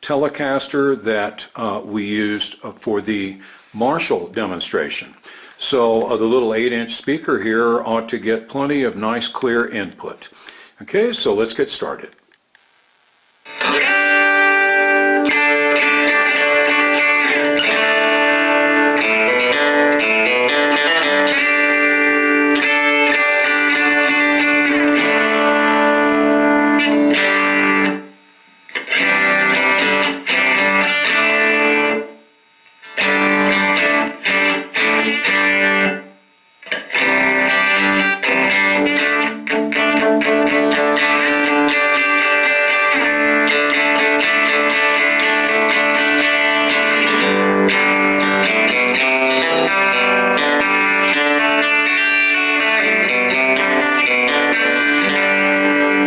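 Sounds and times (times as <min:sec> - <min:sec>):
electric guitar through tube amp: 0:13.5 - 0:56.0.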